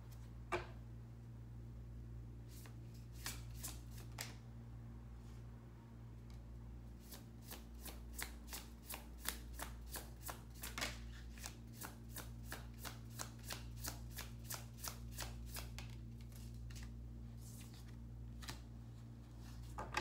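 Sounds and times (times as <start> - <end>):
low steady hum: 0.0 - 20.0
cards being shuffled: 2.5 - 4.4, 7.0 - 18.7.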